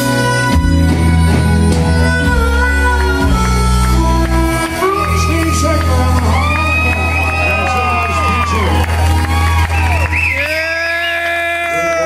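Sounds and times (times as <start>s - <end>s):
country band holding a chord: 0.0s - 11.0s
crowd whooping and cheering: 4.4s - 12.0s.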